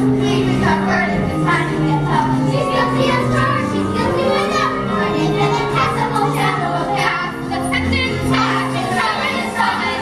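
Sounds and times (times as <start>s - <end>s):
children singing: 0.0s - 10.0s
instrumental accompaniment: 0.0s - 10.0s.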